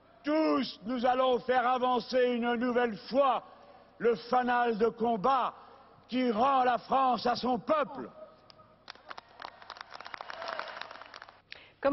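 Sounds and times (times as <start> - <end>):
crowd applauding: 8.8 - 11.4.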